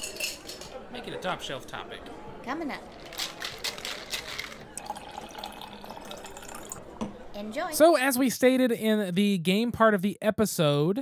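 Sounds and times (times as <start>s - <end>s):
drink pouring into a glass: 4.6s - 6.9s.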